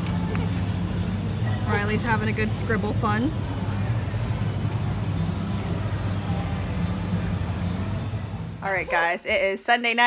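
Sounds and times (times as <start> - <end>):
shopping centre hum and din: 0.0 - 10.0.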